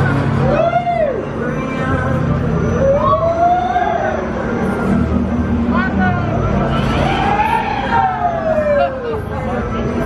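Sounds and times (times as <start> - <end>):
ride riders screaming: 0.2 - 4.6, 6.7 - 9.6.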